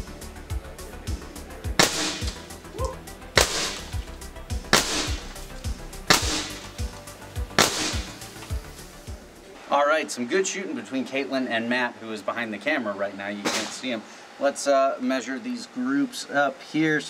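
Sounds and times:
background music with steady beat: 0.0 - 9.7
air rifle shots: 1.8 - 2.6, 3.4 - 4.1, 4.7 - 6.9, 7.5 - 8.3.

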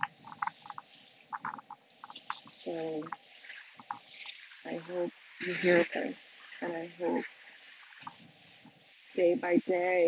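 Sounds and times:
frogs croaking: 0.0 - 8.8.

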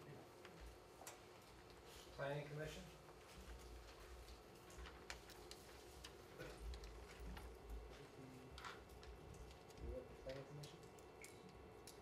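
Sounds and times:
small clicks and rustles: 3.1 - 12.0.

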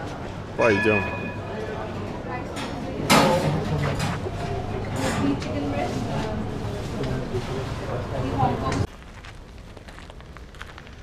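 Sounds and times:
people chattering: 0.0 - 8.9.

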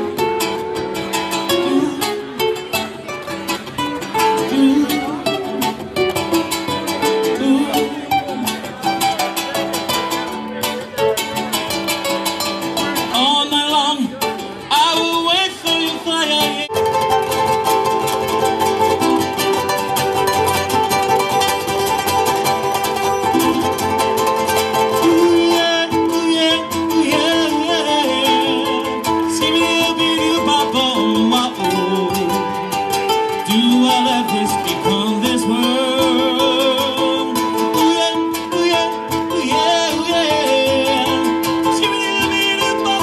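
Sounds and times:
ukulele and guitar chords: 0.0 - 43.0.

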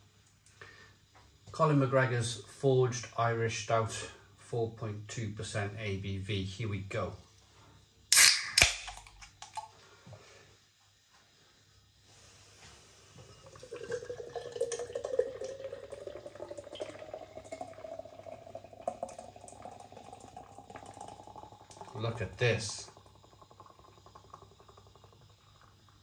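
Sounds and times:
can cracked open with hiss: 8.1 - 9.6
beer glugging into glass: 13.2 - 26.0.

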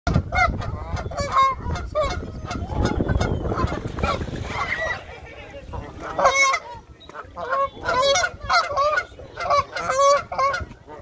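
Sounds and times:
geese honking: 0.1 - 11.0.

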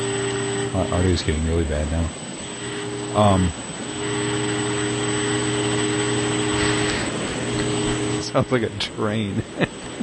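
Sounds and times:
electric fan humming: 0.0 - 10.0.

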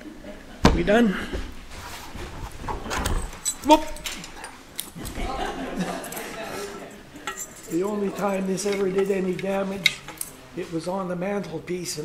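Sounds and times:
heavy object knocks and bumps: 0.6 - 1.6.

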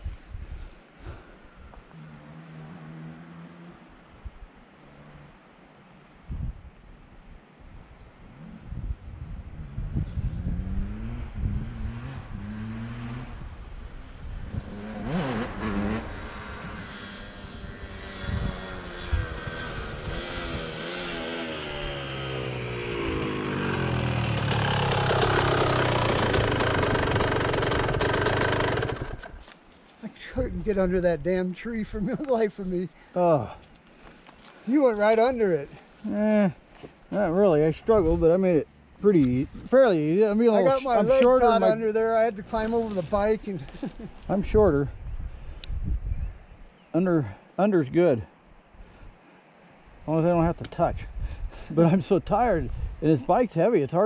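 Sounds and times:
dirt bike engine revving: 10.5 - 13.4, 14.5 - 29.4.

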